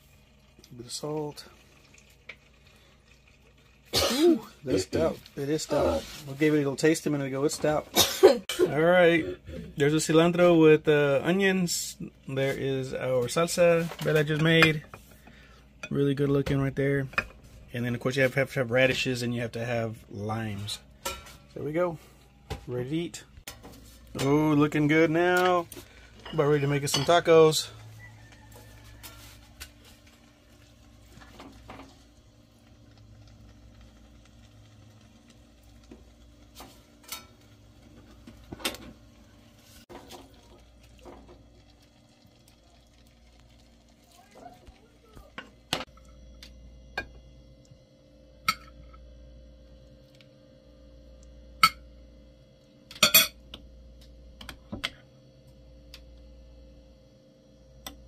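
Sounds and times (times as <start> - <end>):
steady low hum: 0.0 - 58.0
spoon clinking on pot and plates: 26.2 - 27.3.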